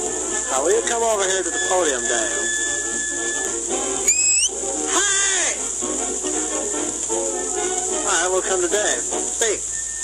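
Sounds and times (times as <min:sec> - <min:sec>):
record surface hiss: 0:00.0 - 0:10.0
short rising whistle: 0:04.1 - 0:04.5.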